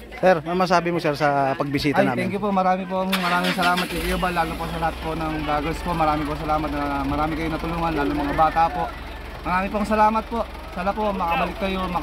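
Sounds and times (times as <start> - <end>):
man talking: 0.2 - 12.0.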